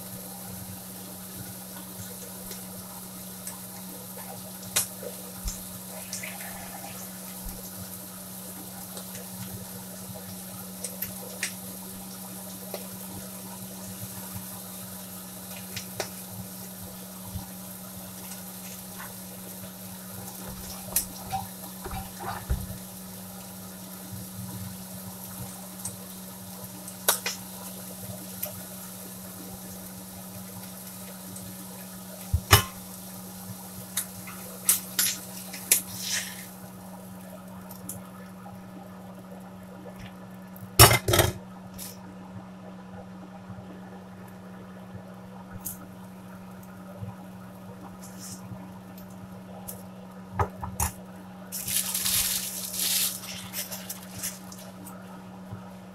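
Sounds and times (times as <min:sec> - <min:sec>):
food sizzling in a skillet: 0:00.0 - 0:38.2, 0:51.5 - 0:55.0
utensils and pans clattering: 0:40.8 - 0:41.4.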